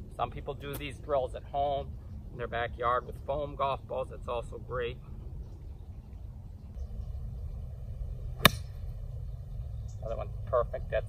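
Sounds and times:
steady low rumble: 0:00.0 - 0:11.0
golf club striking ball: 0:08.3 - 0:09.0.

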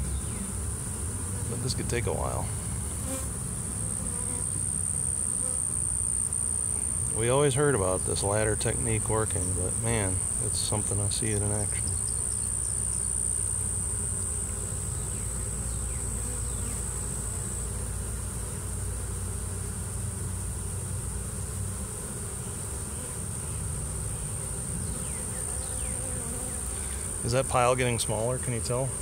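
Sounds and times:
bee swarm buzzing: 0:00.0 - 0:29.0.

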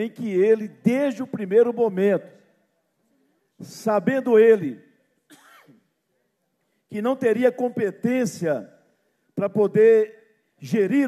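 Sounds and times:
man clearing throat: 0:05.3 - 0:05.8.

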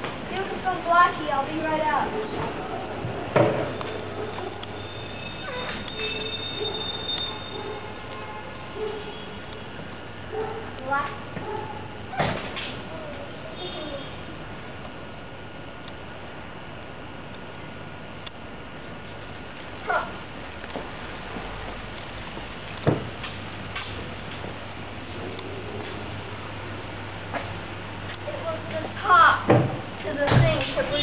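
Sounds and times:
steady low hum: 0:00.0 - 0:31.0
rising squeak: 0:04.6 - 0:07.8.

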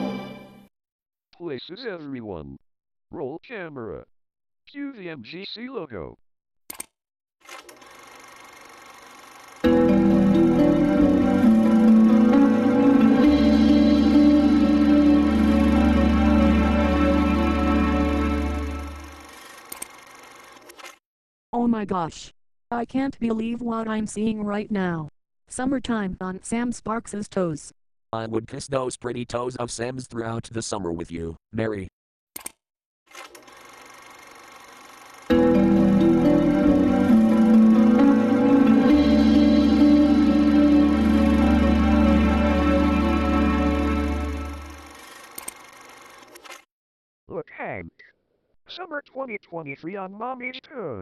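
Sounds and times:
film camera mechanical clatter: 0:19.2 - 0:21.0, 0:32.4 - 0:35.3, 0:44.9 - 0:46.6.

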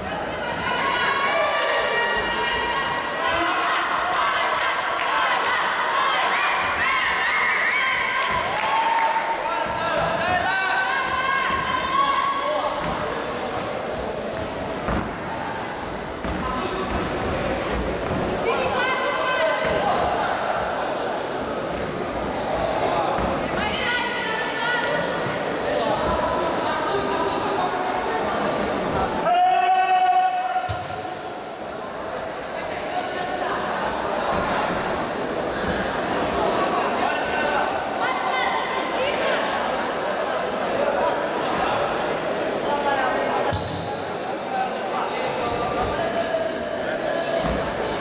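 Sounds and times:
voices shouting in echoing hall: 0:00.0 - 0:48.0.

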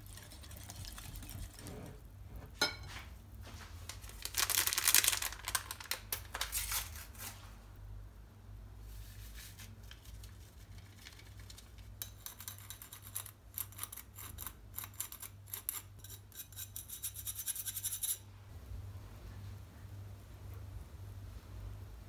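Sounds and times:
faint steady hum: 0:00.0 - 0:22.0
spoon scraping wire-mesh sieve: 0:11.9 - 0:18.2.

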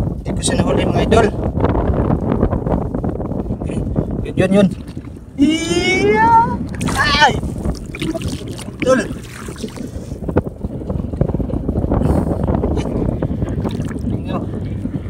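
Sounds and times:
wind rumbling on microphone: 0:00.0 - 0:15.0
hand splashing in shallow water: 0:06.6 - 0:10.2.

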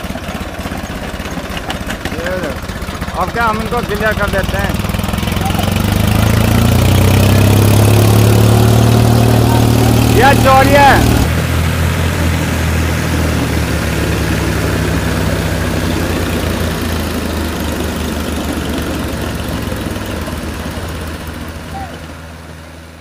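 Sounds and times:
tractor diesel engines under load: 0:00.0 - 0:23.0.

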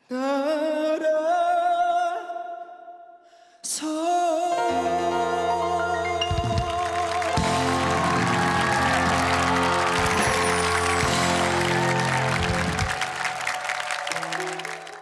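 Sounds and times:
live band playing ballad: 0:04.5 - 0:13.1
audience applause: 0:06.4 - 0:15.0.

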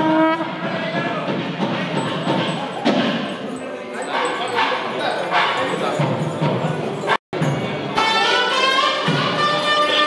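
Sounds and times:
music: 0:00.3 - 0:03.6, 0:04.4 - 0:10.0
crowd voices: 0:00.4 - 0:10.0.

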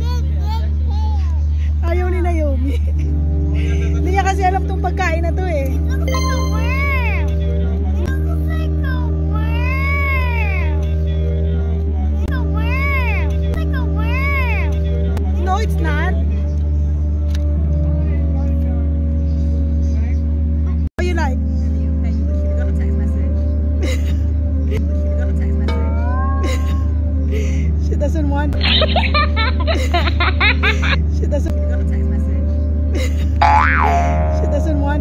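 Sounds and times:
low background music hum: 0:00.0 - 0:35.0
steady low hum: 0:22.0 - 0:35.0.

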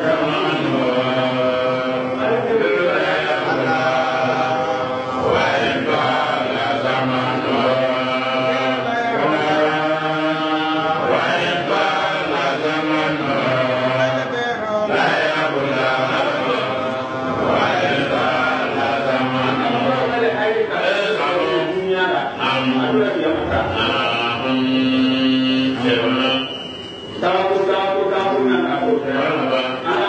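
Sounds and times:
man chanting: 0:00.0 - 0:30.0.

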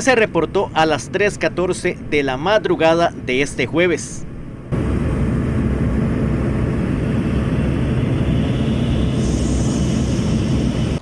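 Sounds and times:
aircraft engine drone: 0:00.0 - 0:11.0
high rushing hiss: 0:08.4 - 0:11.0.

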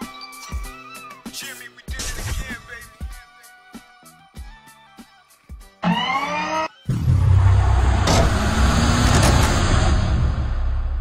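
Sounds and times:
rising whine: 0:05.8 - 0:11.0
rumbling whoosh: 0:06.9 - 0:11.0.

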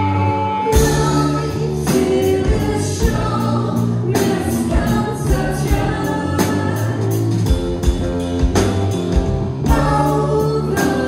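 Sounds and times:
live rock band playing: 0:00.0 - 0:11.0
drums striking: 0:00.8 - 0:11.0.

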